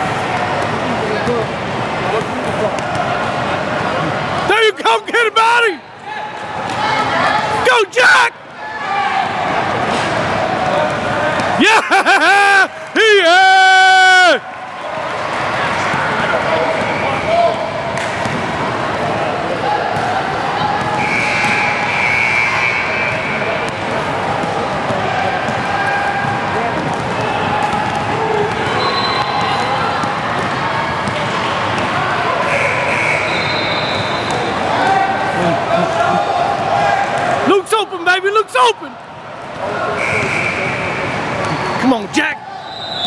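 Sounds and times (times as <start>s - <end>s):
spectators' voices echoing: 0.0s - 43.0s.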